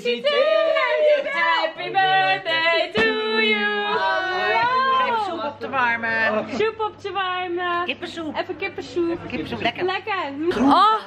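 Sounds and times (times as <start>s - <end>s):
women singing held notes: 0.0s - 5.6s.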